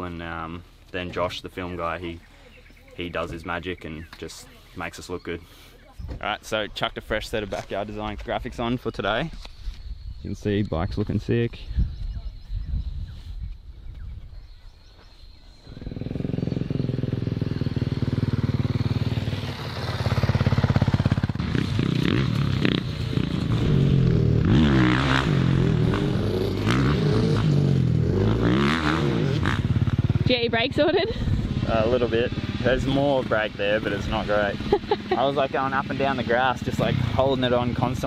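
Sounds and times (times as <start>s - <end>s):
dirt bike engine revving: 15.6s - 38.0s.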